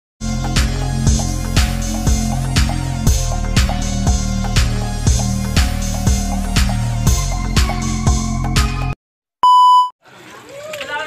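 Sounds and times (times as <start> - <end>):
electronic music with beat: 0.2 - 9.0
high beep tone: 9.4 - 10.0.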